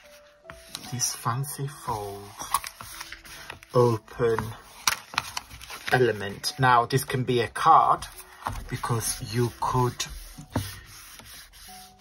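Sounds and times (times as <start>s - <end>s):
hands rubbing on cardstock: 8.8s - 12.0s.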